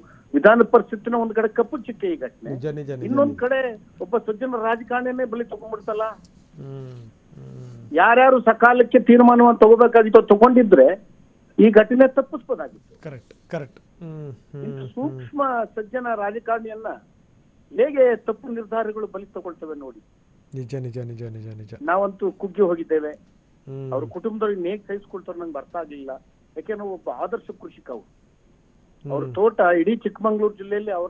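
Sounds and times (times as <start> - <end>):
man talking over telephone: 2.4 - 3.4, 5.8 - 8.0, 12.8 - 15.3, 20.6 - 21.8, 23.7 - 24.2, 29.1 - 29.4.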